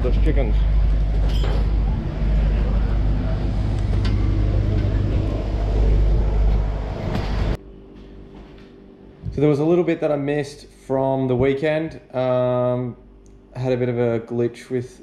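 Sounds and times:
engine rumbling: 0.0 - 7.6
faint steady hum: 0.0 - 15.0.

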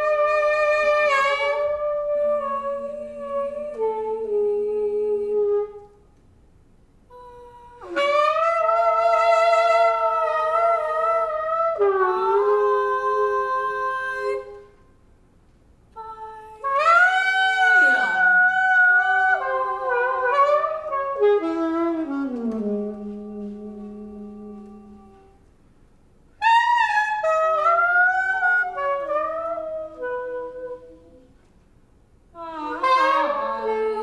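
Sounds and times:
saxophone improvising: 0.0 - 6.0, 7.1 - 14.7, 16.0 - 25.4, 26.4 - 31.4, 32.4 - 34.0.

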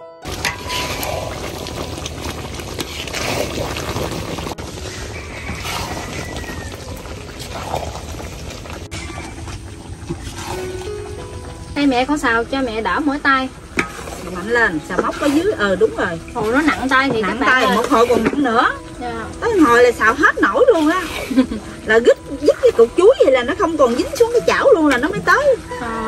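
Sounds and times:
candy mixture sizzling and bubbling: 0.2 - 26.0
faint background music: 0.2 - 26.0
metal spatula scraping a wok: 0.4 - 1.7, 13.8 - 18.6.

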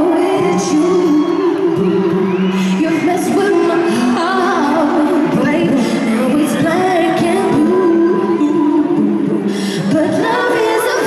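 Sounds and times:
backing music: 0.0 - 11.0
women singing in harmony: 0.0 - 11.0.

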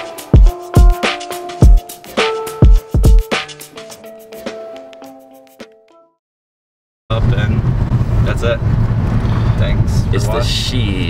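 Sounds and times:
car interior rumble: 7.1 - 11.0.

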